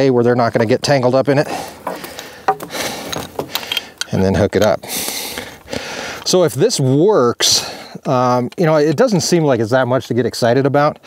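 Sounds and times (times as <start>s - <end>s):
hose scraping against wooden boards: 1.4s - 4.4s
sharp clicks and knocks: 1.8s - 4.7s.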